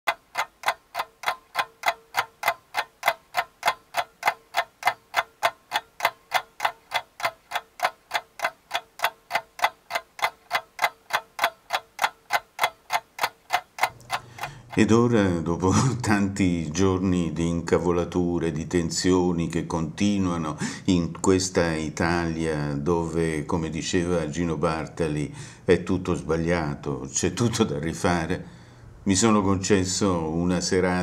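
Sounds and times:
clock ticking: 0:00.0 - 0:15.4.

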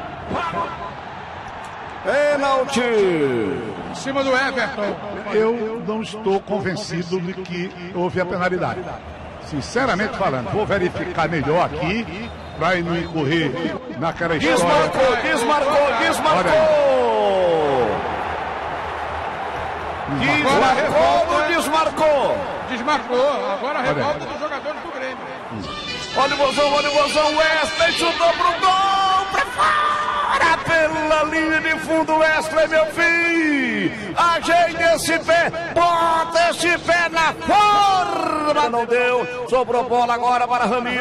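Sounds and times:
radio football commentator exclaiming: 0:09.5 - 0:18.0, 0:20.1 - 0:41.0.

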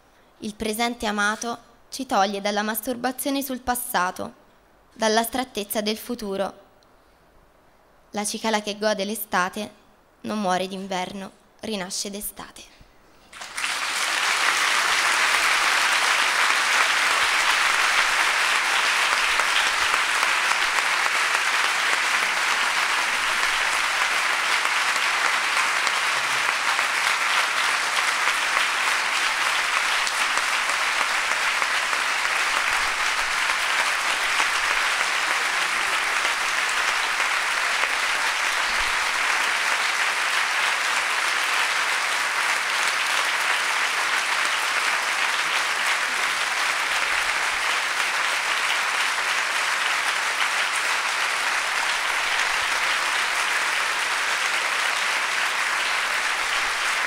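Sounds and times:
audience applauding: 0:13.3 - 0:57.0.

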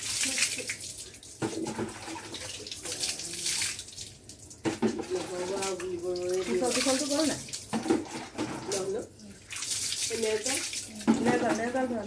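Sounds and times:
water splashing onto concrete: 0:00.0 - 0:12.0.

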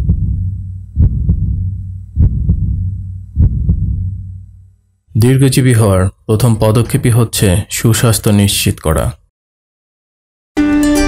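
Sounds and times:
heartbeat thumps: 0:00.0 - 0:04.6.

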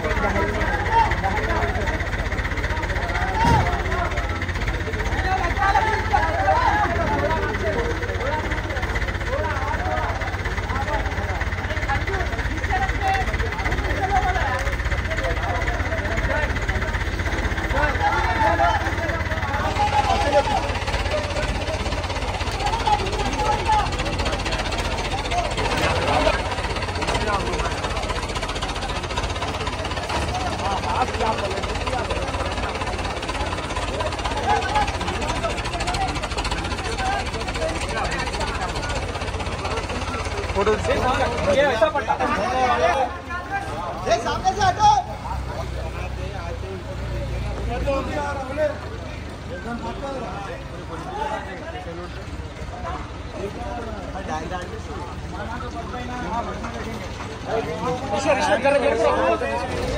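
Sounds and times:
crowd chatter: 0:00.0 - 0:59.9
diesel crane engine rumble: 0:00.0 - 0:59.9.

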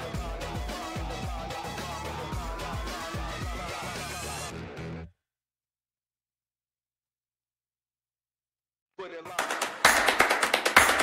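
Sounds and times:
rapid percussive hits: 0:09.4 - 0:11.0.

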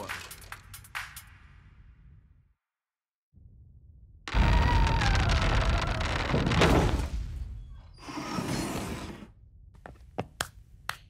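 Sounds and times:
metal vault door grinding shut: 0:04.8 - 0:07.4.

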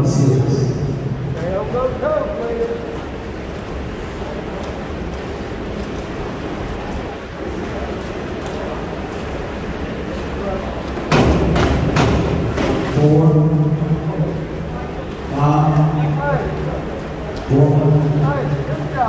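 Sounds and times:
pool hall background noise: 0:00.0 - 0:19.0
diving board thud: 0:11.0 - 0:13.4.

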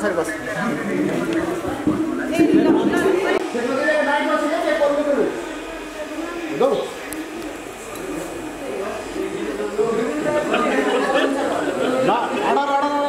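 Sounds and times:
people talking and calling out: 0:00.0 - 0:13.0.

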